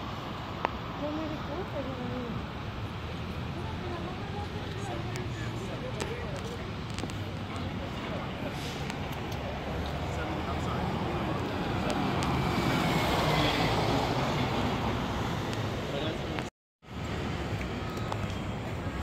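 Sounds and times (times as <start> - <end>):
street traffic noise: 0.0 - 19.0
vehicle passing: 7.8 - 16.2.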